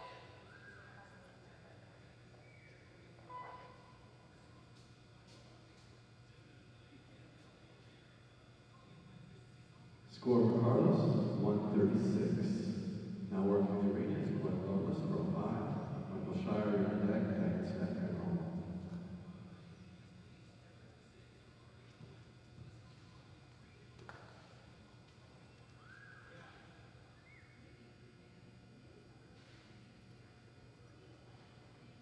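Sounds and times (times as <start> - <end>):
man speaking over speakers: 10.1 - 19.5.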